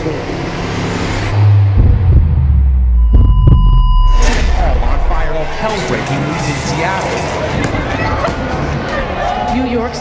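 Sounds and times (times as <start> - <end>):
deep bass rumble: 0.0 - 6.6
sharp hits: 1.2 - 7.6
high ringing tone: 3.0 - 5.6.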